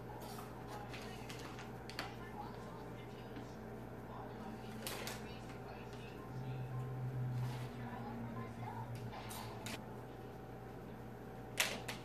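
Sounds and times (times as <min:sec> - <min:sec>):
faint background speech: 0:00.0 - 0:09.8
steady low hum: 0:00.0 - 0:12.0.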